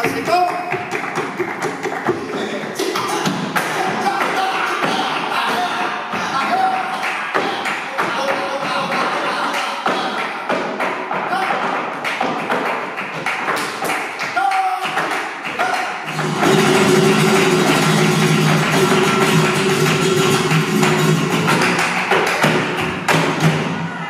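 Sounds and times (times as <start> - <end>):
dancer's rapid footwork stamps: 0.0 - 23.8
hand-clapping: 0.0 - 23.8
flamenco guitar strumming: 16.1 - 23.8.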